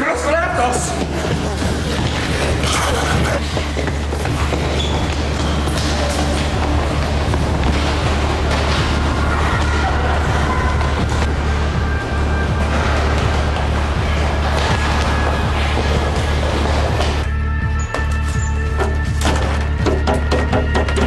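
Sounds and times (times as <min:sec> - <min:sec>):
music with heavy bass: 0:01.0 - 0:21.0.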